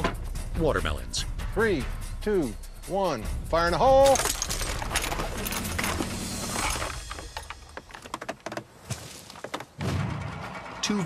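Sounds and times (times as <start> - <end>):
chains rattling: 3.8 - 8.1
timber frame knocking: 6.9 - 9.8
loud thud: 9.8 - 10.5.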